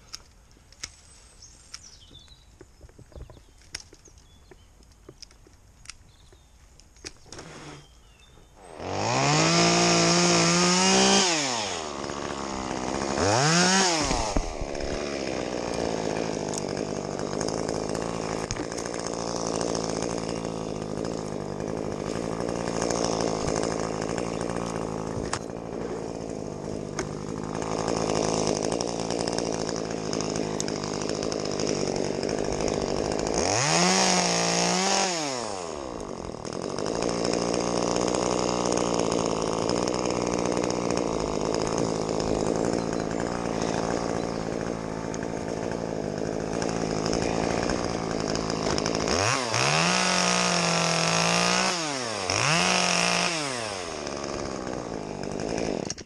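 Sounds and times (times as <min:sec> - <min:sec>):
chainsaw idling and revving: 0:07.1 - 0:56.0.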